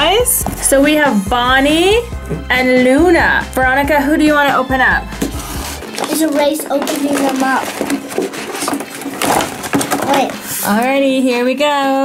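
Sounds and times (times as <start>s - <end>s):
plastic packaging crackling: 5.2s - 10.9s.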